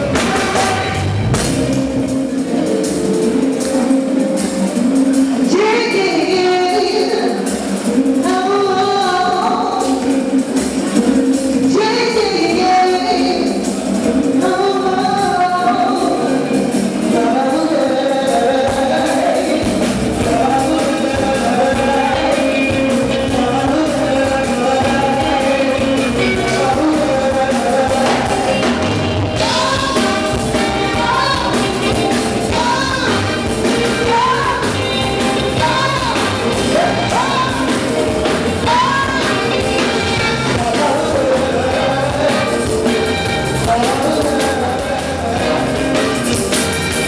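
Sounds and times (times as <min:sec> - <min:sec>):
afrobeat band playing: 0:00.0 - 0:47.0
woman singing long notes: 0:11.0 - 0:42.9.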